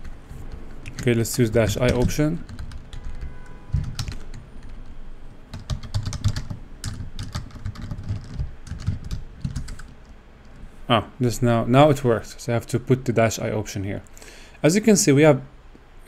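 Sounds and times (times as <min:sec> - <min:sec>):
typing on computer keyboard: 0:00.0 - 0:04.9, 0:05.5 - 0:10.1.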